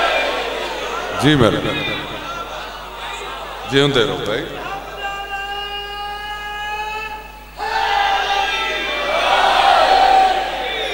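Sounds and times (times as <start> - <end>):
audience shouting and cheering: 0.0 - 3.8, 7.6 - 10.9.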